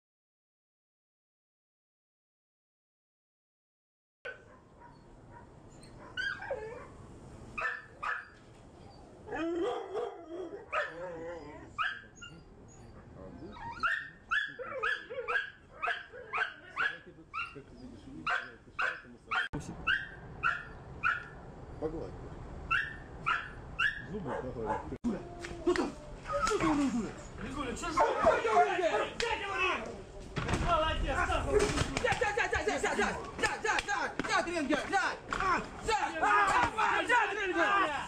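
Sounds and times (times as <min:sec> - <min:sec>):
dogs barking: 0:04.3 - 0:07.0, 0:07.6 - 0:08.4, 0:09.3 - 0:21.4, 0:22.7 - 0:25.0, 0:27.8 - 0:29.2.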